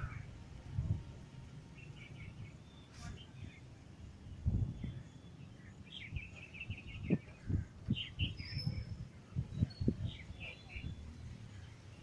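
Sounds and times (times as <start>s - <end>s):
small birds chirping: 1.5s - 12.0s.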